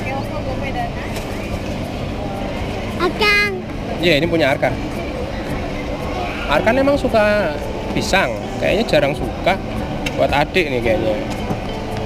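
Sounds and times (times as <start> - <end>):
faint indistinct voices: 0.0 - 12.0.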